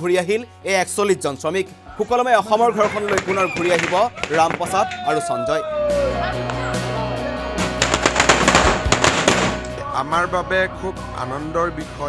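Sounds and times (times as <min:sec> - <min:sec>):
firecrackers crackling: 0:02.0 - 0:05.6, 0:07.5 - 0:09.8.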